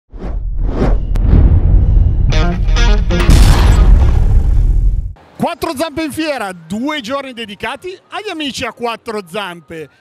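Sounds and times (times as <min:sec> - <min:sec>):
whooshes: 0:00.1 - 0:02.4.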